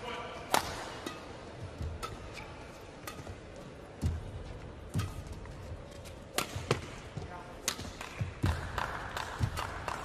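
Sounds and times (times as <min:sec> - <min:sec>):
rackets hitting shuttlecock: 0:00.5 - 0:10.0.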